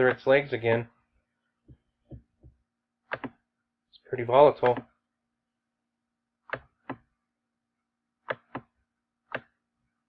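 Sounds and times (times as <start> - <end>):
computer mouse clicking: 3.1 - 3.4.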